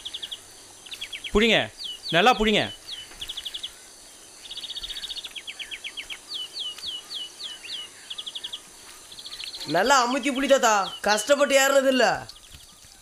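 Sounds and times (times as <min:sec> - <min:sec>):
faint outdoor hiss: 0:00.0 - 0:13.0.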